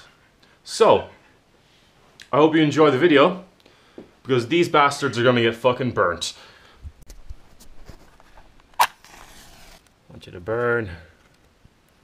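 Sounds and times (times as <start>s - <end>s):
match striking box: 8.7s - 9.9s.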